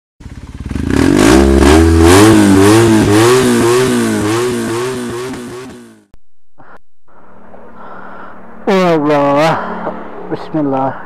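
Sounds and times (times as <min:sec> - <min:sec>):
motorcycle engine revving: 0:00.2 - 0:06.1, 0:08.5 - 0:10.5.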